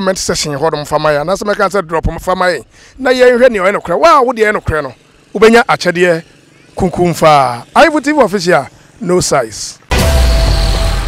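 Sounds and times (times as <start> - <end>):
man speaking: 0.0 - 9.8.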